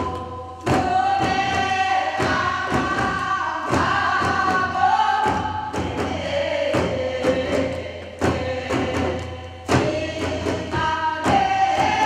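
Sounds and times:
barrel drum strokes: 0.0 - 12.0
group singing folk song: 0.0 - 12.0.

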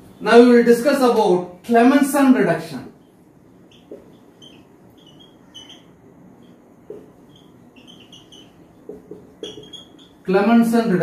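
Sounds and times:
marker squeaking on whiteboard: 3.0 - 10.3
marker tip tapping board: 3.8 - 4.2, 6.8 - 9.8.

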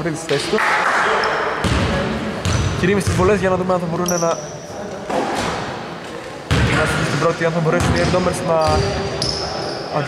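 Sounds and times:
basketball bouncing on wooden floor: 1.6 - 3.4, 7.7 - 9.1.

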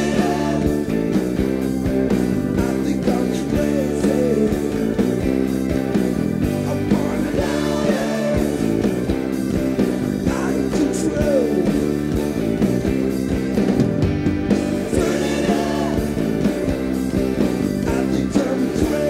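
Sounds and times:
bass guitar: 0.0 - 19.0
drums: 0.0 - 19.0
electric guitars: 0.0 - 19.0.

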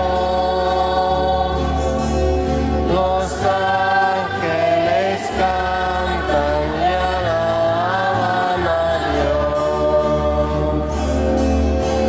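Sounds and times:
voices singing a hymn: 0.0 - 11.6.

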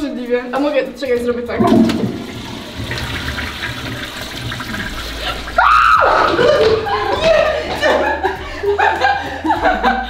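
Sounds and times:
toilet flushing: 1.6 - 7.0
loud shout: 5.6 - 7.3.

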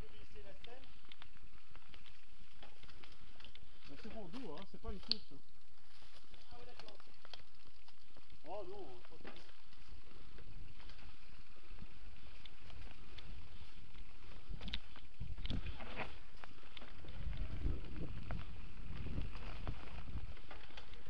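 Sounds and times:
bike rattling over rough ground: 0.0 - 21.0
wind rumble on microphone: 12.8 - 21.0.

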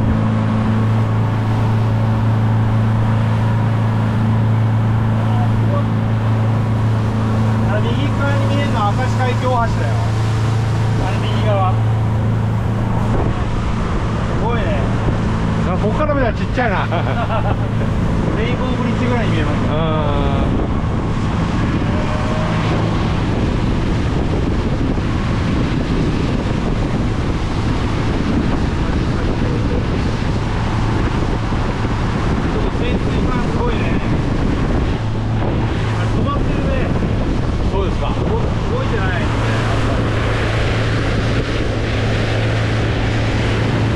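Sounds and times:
boat engine hum: 0.0 - 43.9
water noise from hull: 0.0 - 43.9
wind buffeting microphone: 0.0 - 43.9.

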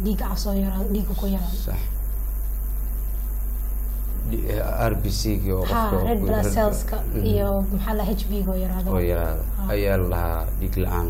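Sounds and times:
low electrical hum: 0.0 - 11.0
even hiss: 0.1 - 11.0.

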